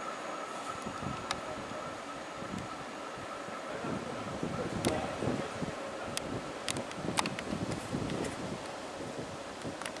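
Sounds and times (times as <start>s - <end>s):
wind buffeting microphone: 0.5s - 10.0s.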